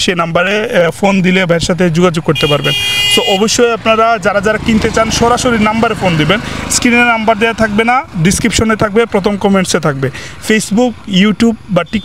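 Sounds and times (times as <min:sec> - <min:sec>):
man talking: 0:00.0 - 0:12.0
vehicle horn: 0:02.4 - 0:03.6.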